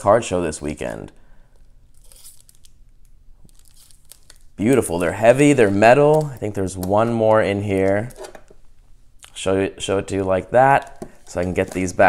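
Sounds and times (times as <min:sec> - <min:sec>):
metal trading cards rustling: 0:01.9 - 0:08.6, 0:10.7 - 0:12.0.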